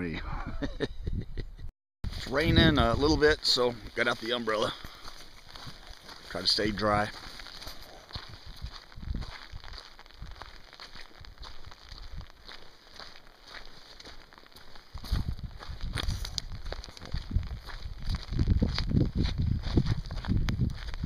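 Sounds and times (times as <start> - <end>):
wind rumble on microphone: 8.0 - 10.5, 15.0 - 21.0.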